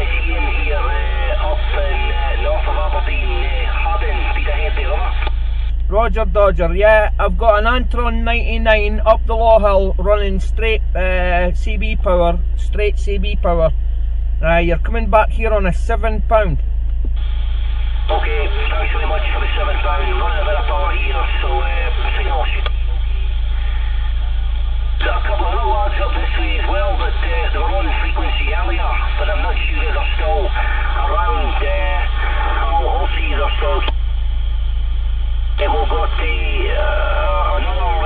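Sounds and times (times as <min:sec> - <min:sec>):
steady low hum: 0:00.0 - 0:38.0
voices over radio speaker: 0:00.0 - 0:38.0.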